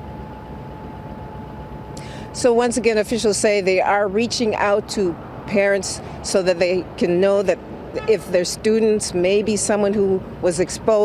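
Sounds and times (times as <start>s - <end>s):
traffic rumble and hiss: 0.0s - 11.0s.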